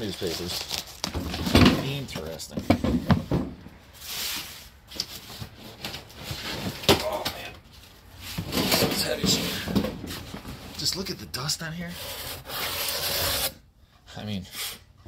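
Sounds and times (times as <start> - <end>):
cardboard and paper rustling: 0.0 - 13.4
boxes knocking: 1.1 - 3.7, 8.4 - 10.7.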